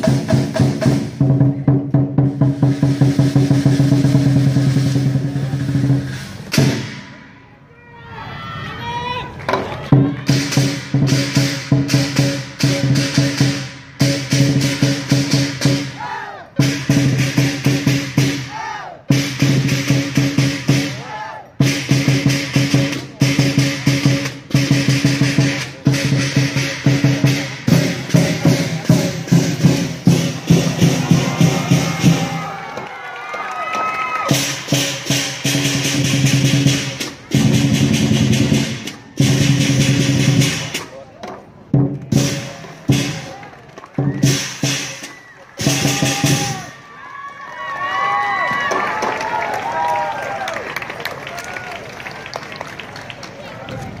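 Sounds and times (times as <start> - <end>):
drum: 0.0 - 7.3, 9.5 - 16.0, 16.6 - 33.0, 33.8 - 46.8
cymbals: 0.0 - 7.8, 10.3 - 32.6, 34.2 - 41.0, 42.0 - 43.5, 44.1 - 46.8.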